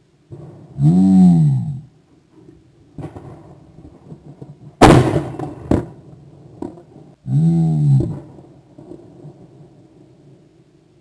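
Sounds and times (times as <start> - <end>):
shotgun firing: 4.8 - 6.0.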